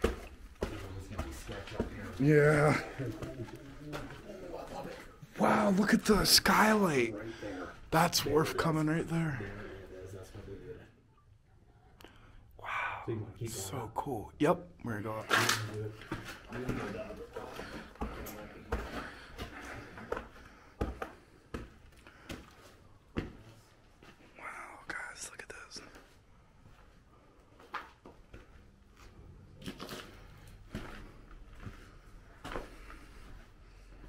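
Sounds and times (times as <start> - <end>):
footsteps on concrete and rubble: 0.0 - 5.4, 15.3 - 24.2, 27.6 - 33.5
faint whispered voice: 24.3 - 26.2.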